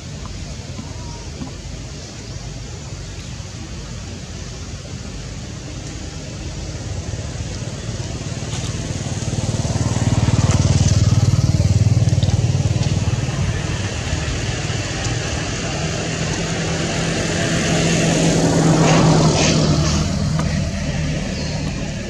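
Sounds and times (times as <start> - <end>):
vehicle engine running: 4.6 - 22.0.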